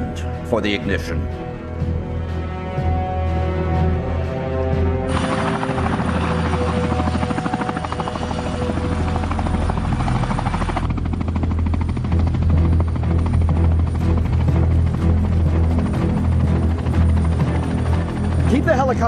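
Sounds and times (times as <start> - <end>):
helicopter rotor beats: 0.0 - 19.0
low film score drone: 1.2 - 19.0.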